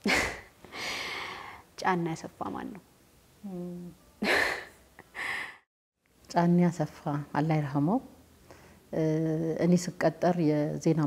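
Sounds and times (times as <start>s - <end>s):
person gasping: 0.7s - 1.6s, 4.2s - 5.6s.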